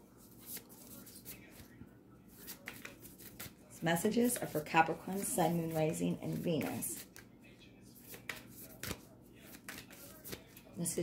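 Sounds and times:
cards being shuffled: 0.2 - 1.7, 2.3 - 3.6, 4.2 - 7.3, 8.0 - 10.7.

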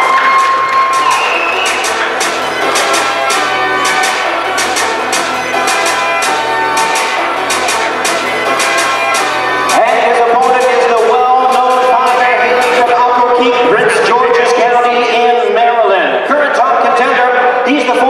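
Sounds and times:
crowd cheering: 0.0 - 5.0, 11.1 - 16.9
music with steady beat: 0.0 - 15.4.

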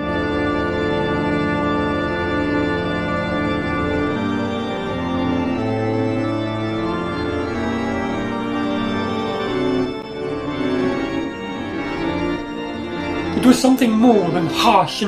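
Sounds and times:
organ playing slow chords: 0.0 - 15.0.

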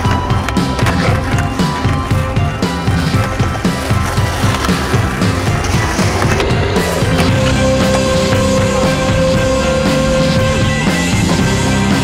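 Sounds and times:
music with steady beat: 0.0 - 12.0
skateboard wheels on concrete: 0.0 - 12.0.

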